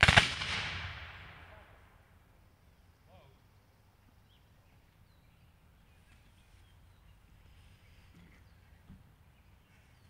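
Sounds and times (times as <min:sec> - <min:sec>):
black-powder gunshot report: 0:00.0 - 0:01.8.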